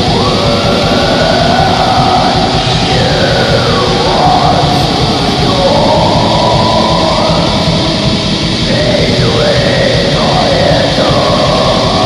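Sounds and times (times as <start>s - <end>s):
distorted guitars: 0.0s - 12.0s
fast drumming: 0.0s - 12.0s.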